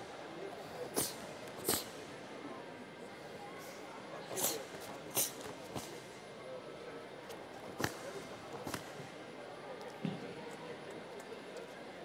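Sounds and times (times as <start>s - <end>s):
low hall murmur: 0.0s - 12.0s
snaps of cloth uniform: 7.8s - 8.0s, 8.6s - 8.9s.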